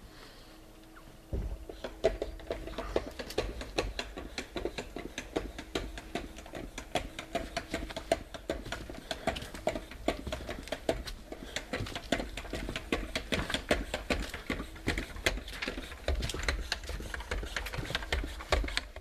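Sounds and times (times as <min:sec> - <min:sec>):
footsteps on crackling paper: 0:01.4 - 0:19.0.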